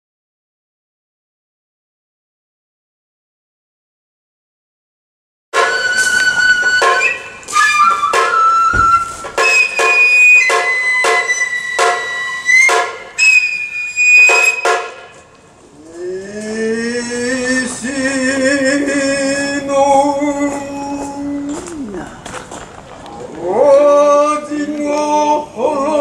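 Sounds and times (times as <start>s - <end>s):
bamboo flute long high notes: 5.6s - 15.2s
sharp drum strokes: 8.0s - 13.2s.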